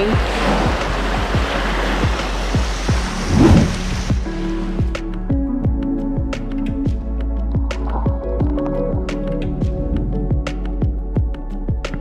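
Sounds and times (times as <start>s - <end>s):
rushing noise: 0.0s - 4.2s
music with steady beat: 0.0s - 12.0s.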